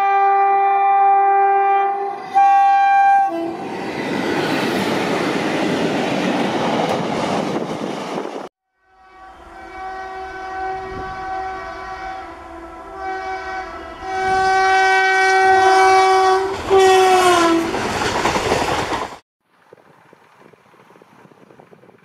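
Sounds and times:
locomotive horn blasts: 0.0 - 3.6, 8.7 - 17.7
passing train noise: 1.6 - 19.2.

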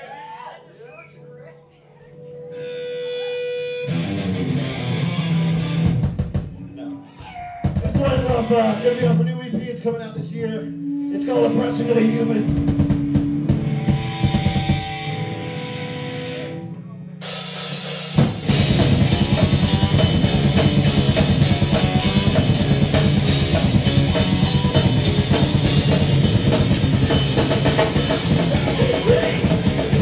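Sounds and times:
live rock band playing: 2.2 - 6.7, 7.6 - 30.0
fast driving drumming: 7.6 - 10.6, 11.8 - 15.1, 17.2 - 30.0.

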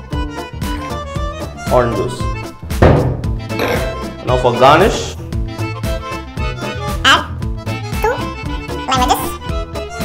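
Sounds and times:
fiddle music: 0.0 - 10.0
bottle thunk on bar top: 2.6 - 3.8.

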